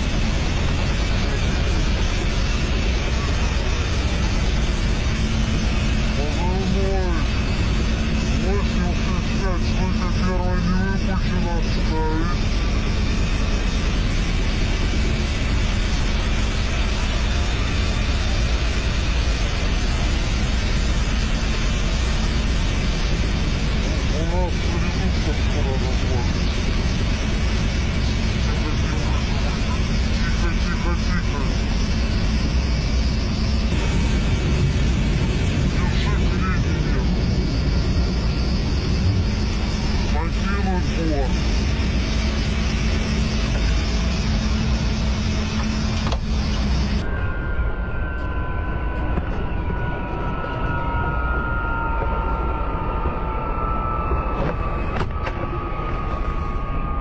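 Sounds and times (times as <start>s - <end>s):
engines whining down: 0.0s - 57.0s
helicopter rotors and engines: 0.0s - 57.0s.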